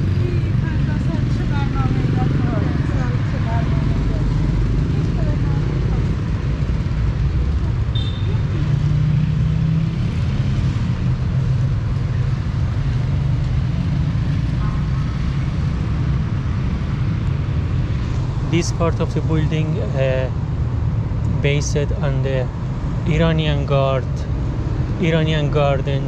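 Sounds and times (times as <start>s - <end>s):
street traffic rumble: 0.0s - 26.0s.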